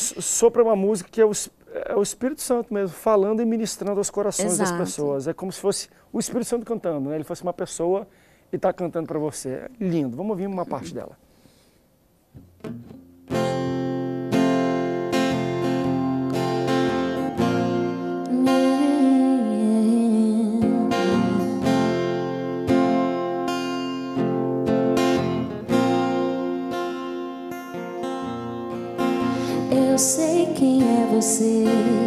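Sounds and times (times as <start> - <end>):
woman singing: 4.4 - 5.0, 18.2 - 21.7, 29.3 - 32.0
acoustic guitar strumming chords: 12.4 - 32.0.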